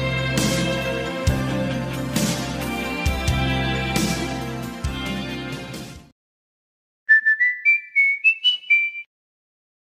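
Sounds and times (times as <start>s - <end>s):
whistle-like jingle: 7.1s - 9.1s.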